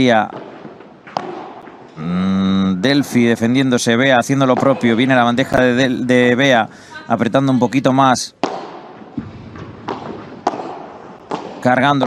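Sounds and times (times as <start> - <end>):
ball bouncing on court: 0.0 - 2.0, 4.2 - 5.7, 7.6 - 12.0
rackets hitting ball: 0.0 - 2.0, 4.3 - 5.7, 8.3 - 12.0.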